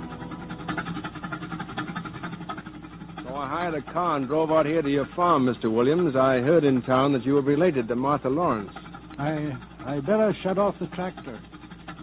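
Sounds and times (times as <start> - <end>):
tractor engine running: 0.0 - 12.0.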